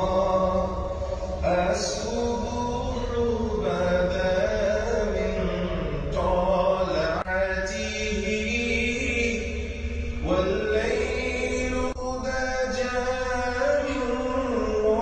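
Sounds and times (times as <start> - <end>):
vocal chant in held notes: 0.0 - 15.0.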